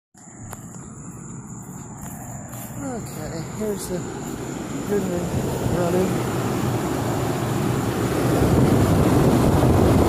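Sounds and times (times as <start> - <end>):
heat pump fan and compressor: 0.2 - 10.0.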